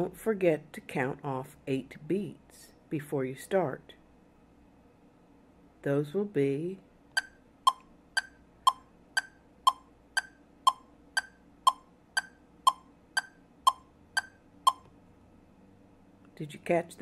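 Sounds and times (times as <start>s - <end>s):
metronome clicking: 7.1s - 14.9s.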